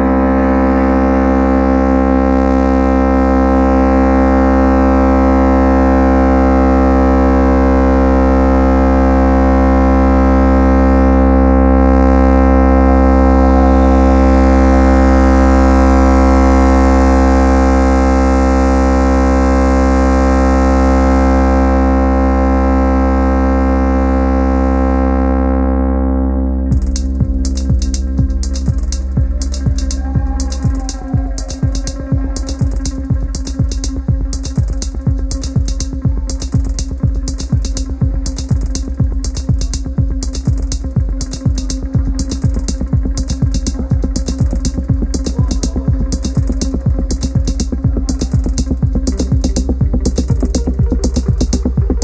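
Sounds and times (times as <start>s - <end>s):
deep steady bass: 0.0s - 52.0s
synthesizer chord drone: 0.0s - 52.0s.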